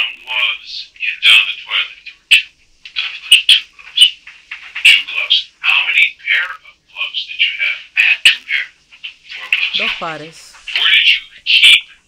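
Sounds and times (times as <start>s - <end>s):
man talking: 0.0s - 3.5s, 4.8s - 10.0s, 10.6s - 12.0s.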